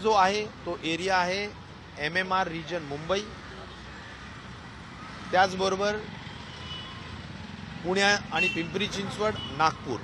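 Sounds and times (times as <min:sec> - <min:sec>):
outdoor background noise: 0:00.0 - 0:10.0
man speaking: 0:07.8 - 0:10.0.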